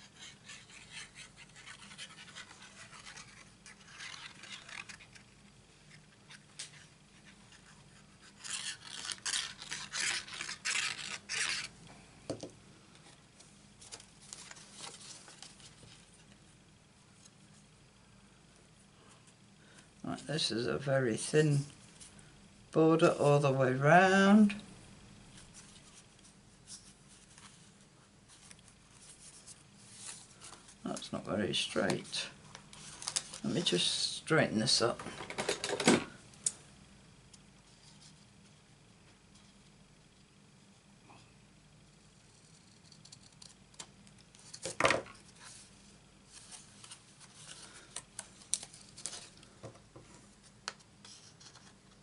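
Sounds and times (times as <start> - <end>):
paper rustling and scraping: 0.0 - 11.8, 13.8 - 16.3, 25.4 - 33.9, 44.4 - 49.5, 50.1 - 52.0.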